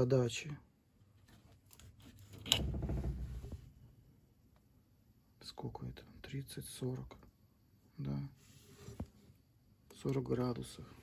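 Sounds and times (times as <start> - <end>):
rubbing and handling noise: 8.3 - 9.5.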